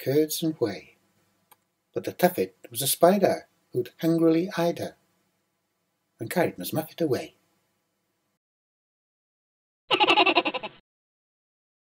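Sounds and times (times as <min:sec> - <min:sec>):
quavering voice-like cry: 0:09.9 - 0:10.8.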